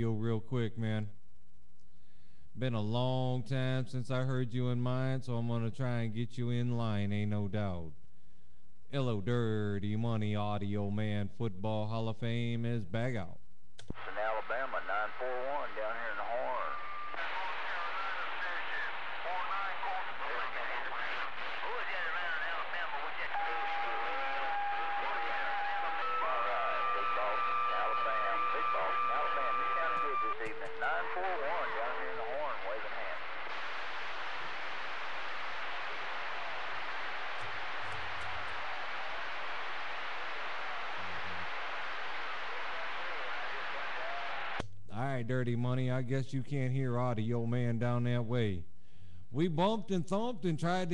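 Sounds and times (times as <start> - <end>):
faint distant radio voices: 13.9 - 44.6
radio hiss and static: 13.9 - 44.6.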